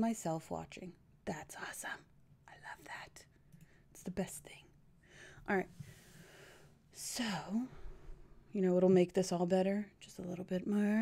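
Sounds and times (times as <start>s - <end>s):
woman whispering: 1.3s - 3.3s, 4.0s - 4.8s.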